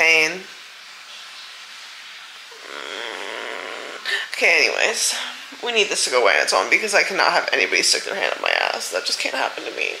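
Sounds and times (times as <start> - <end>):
faint hiss: 1.1 - 10.0
woman groaning: 2.5 - 4.4.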